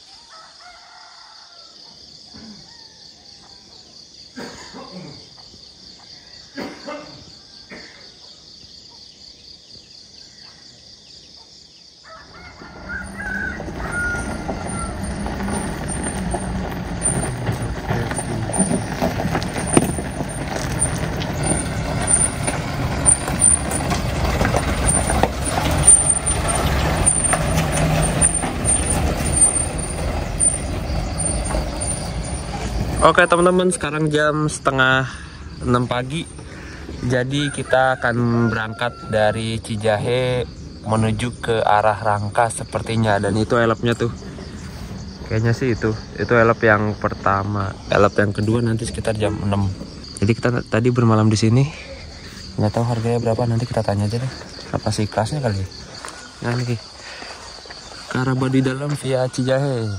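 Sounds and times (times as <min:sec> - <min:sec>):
diesel minibus driving on gravel: 0:12.1 - 0:59.9.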